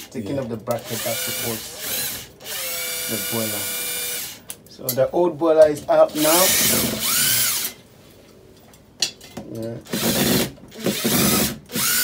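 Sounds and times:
power drill running: 0.8 - 4.4, 6.1 - 7.7, 9.9 - 12.0.

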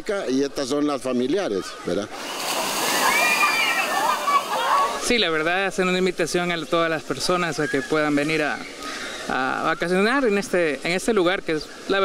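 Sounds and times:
water torrent splashing: 2.1 - 12.0
people shouting and shrieking: 2.6 - 5.0.

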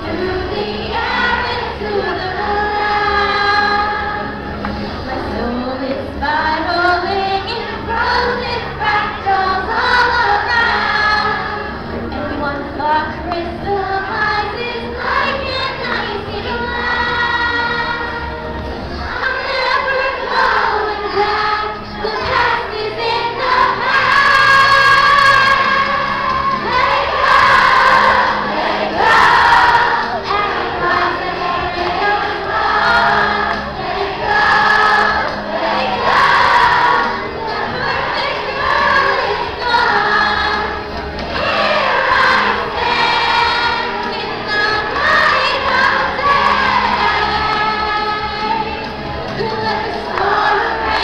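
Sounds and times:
backing track music: 0.0 - 51.0
many voices singing together: 0.0 - 51.0
girl singing into microphone: 19.0 - 26.0.

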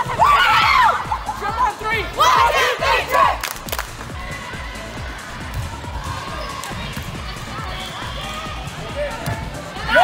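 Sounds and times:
girls shouting a cheer: 0.0 - 3.5, 4.1 - 8.8, 9.8 - 10.0.

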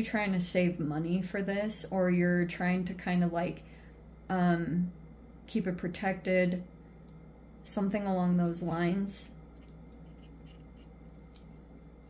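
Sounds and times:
steady low hum: 0.0 - 12.0
fingers handling cards on table: 9.5 - 11.7.

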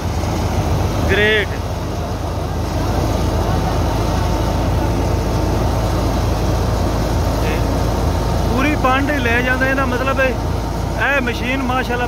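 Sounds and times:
thresher running: 0.0 - 12.0
tractor diesel engine drone: 0.0 - 12.0.

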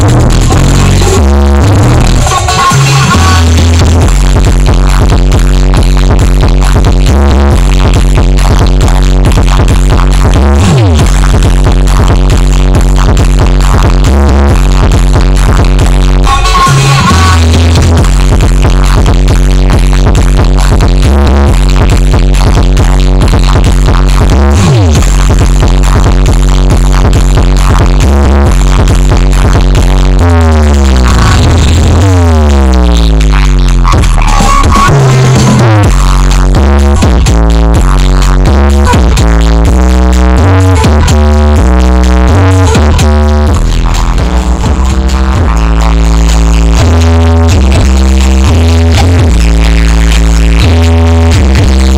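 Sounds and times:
heavy pulsing bass: 0.0 - 51.9
loud electronic dance music: 0.0 - 51.9.

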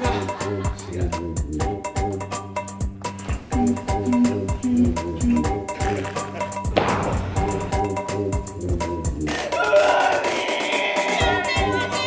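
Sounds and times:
upbeat music with low thumps: 0.0 - 12.0
high drawn-out wailing cry: 9.5 - 12.0.

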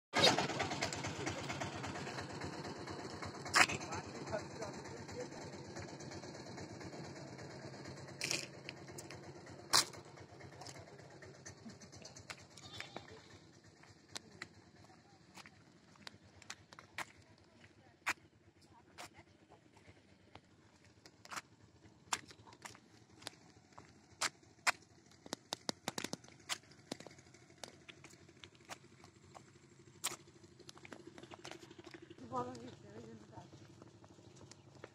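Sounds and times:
small vehicle engine: 0.1 - 34.9.

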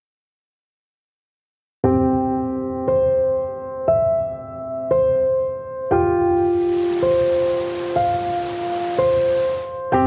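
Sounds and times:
soft piano music: 1.8 - 10.0
stream running over rocks: 6.2 - 9.8.

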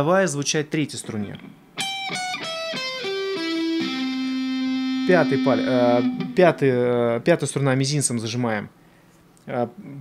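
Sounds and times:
electric guitar single notes: 1.8 - 6.8.

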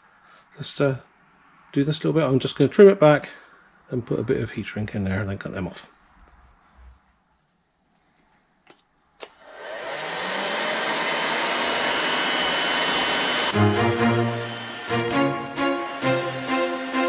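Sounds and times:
heat gun fan blowing: 9.2 - 17.0
background music: 13.5 - 17.0.

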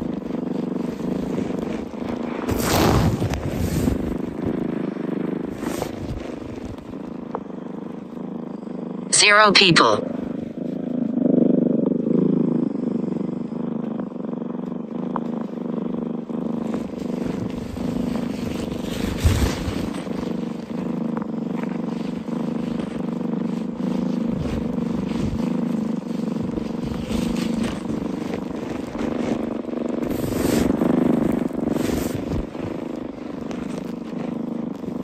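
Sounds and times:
rustles and bumps: 0.0 - 7.6, 14.7 - 35.0
low mechanical drone: 0.0 - 9.1, 10.0 - 35.0.

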